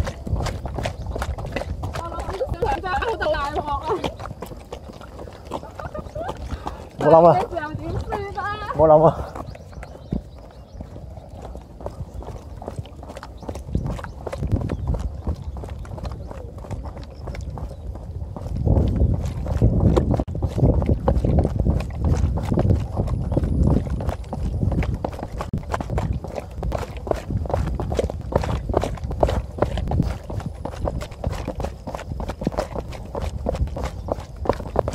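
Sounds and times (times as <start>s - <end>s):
running footsteps on concrete steps: 0.0s - 34.9s.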